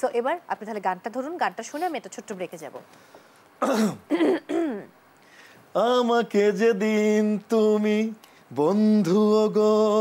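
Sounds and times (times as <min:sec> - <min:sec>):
person clearing throat: 0:03.6 - 0:04.9.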